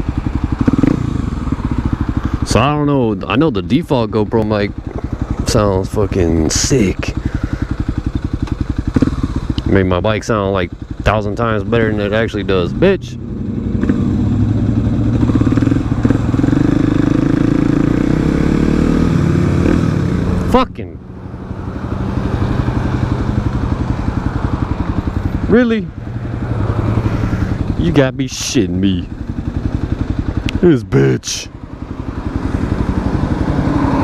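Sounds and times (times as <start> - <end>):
motorcycle engine idling: 0.0 - 34.0.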